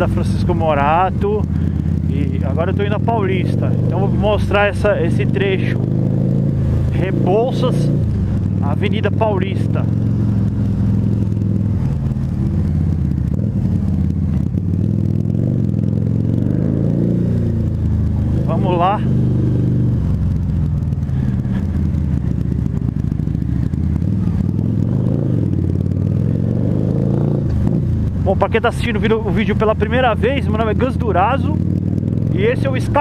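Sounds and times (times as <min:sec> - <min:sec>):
motorcycle engine at low speed: 0:00.0 - 0:33.0.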